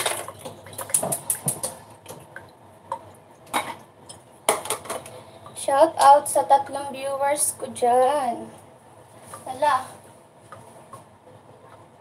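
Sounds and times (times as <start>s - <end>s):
woman speaking: 5.6s - 8.6s, 9.4s - 10.0s.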